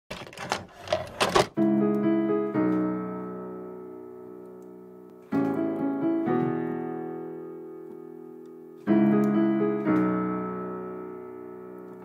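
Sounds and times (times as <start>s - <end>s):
sustained piano chord: 1.6s - 12.0s.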